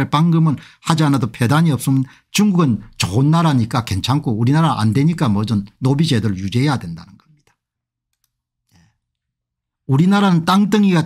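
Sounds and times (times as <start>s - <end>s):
man speaking: 0.0s - 7.5s, 9.9s - 11.0s.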